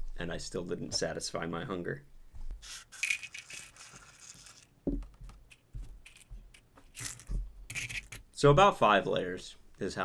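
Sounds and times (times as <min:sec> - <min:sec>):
cereal rattling out of a bowl: 0:02.9 - 0:04.7.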